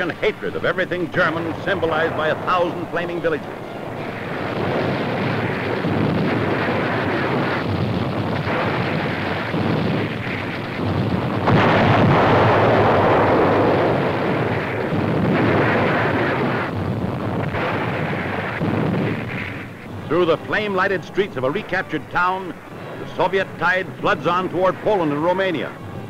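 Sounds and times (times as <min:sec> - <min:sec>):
explosions and burning rumble: 0:00.0 - 0:26.0.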